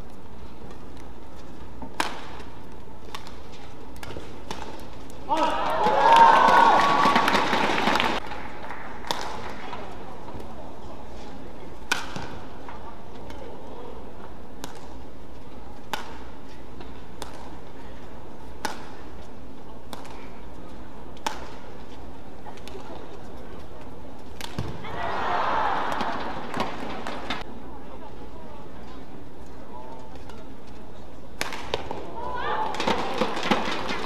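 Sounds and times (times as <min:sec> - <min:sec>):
racket striking shuttlecock: 0:01.8 - 0:06.0, 0:09.0 - 0:09.9, 0:11.8 - 0:12.5, 0:14.6 - 0:15.0, 0:15.8 - 0:17.6, 0:18.6 - 0:19.0, 0:19.9 - 0:20.4, 0:21.1 - 0:21.7, 0:24.3 - 0:24.8, 0:25.9 - 0:27.5, 0:31.4 - 0:34.0
arena crowd murmur: 0:17.6 - 0:34.0.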